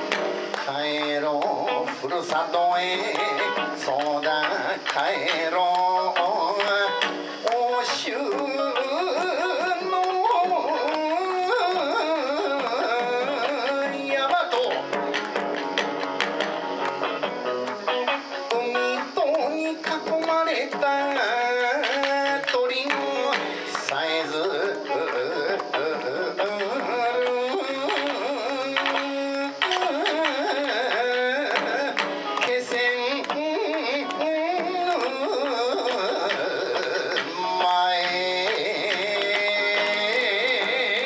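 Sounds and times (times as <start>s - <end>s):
person singing ornamented melody: 0.0s - 15.2s, 18.4s - 41.0s
electric guitar: 0.0s - 41.0s.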